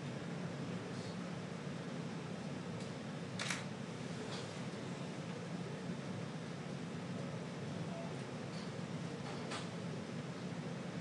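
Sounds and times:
low room hum: 0.0s - 11.0s
camera shutter clicks: 3.4s - 3.7s.

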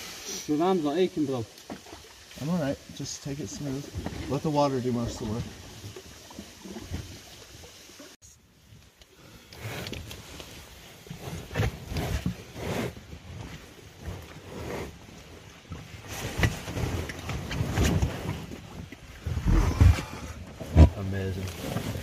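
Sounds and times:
oars splashing and knocking: 0.9s - 22.0s.

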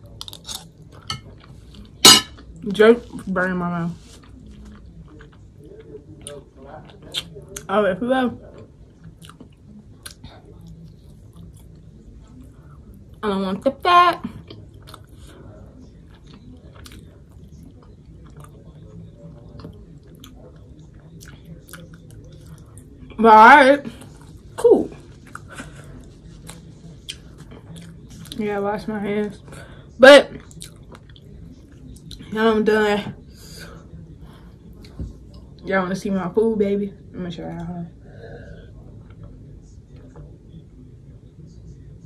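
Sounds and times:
person chewing food: 4.0s - 7.7s, 8.6s - 13.1s, 14.4s - 15.3s, 16.0s - 18.8s, 19.4s - 23.0s, 24.0s - 28.4s, 30.4s - 32.2s.

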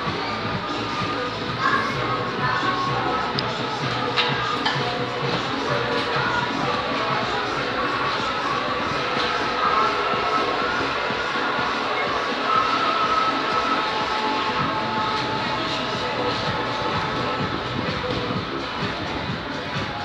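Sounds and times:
background music: 0.0s - 20.0s
faint indistinct voices: 0.0s - 20.0s
steady din of noise: 0.0s - 20.0s.

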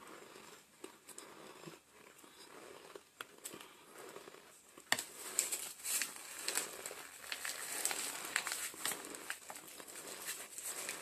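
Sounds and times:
faint chewing crunches: 0.0s - 11.0s.

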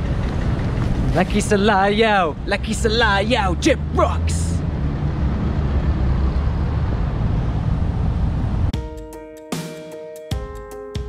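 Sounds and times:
wind rumbling on microphone: 0.0s - 2.7s, 4.6s - 8.8s.

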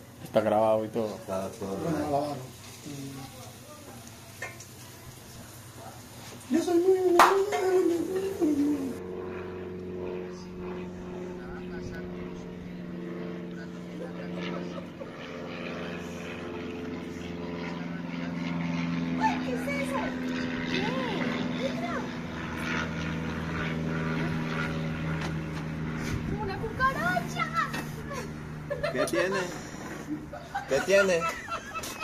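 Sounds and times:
motor engine droning: 7.2s - 32.0s.

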